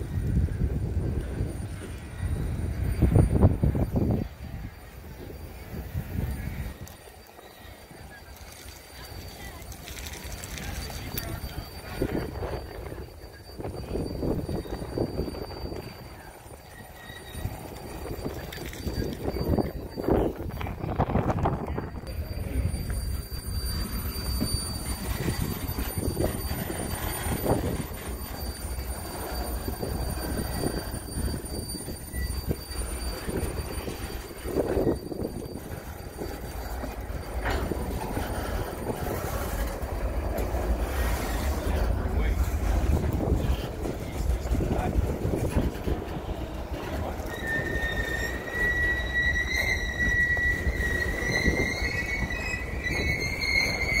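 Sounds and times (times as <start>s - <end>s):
train cars clanking: 0.0s - 54.0s
train wheels rumbling on rail: 0.0s - 54.0s
wheel flanges squealing: 0.0s - 54.0s.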